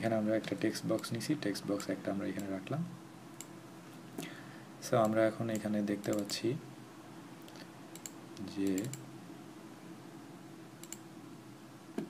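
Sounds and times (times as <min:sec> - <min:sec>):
mouse and keyboard clicks: 0:10.8 - 0:11.0.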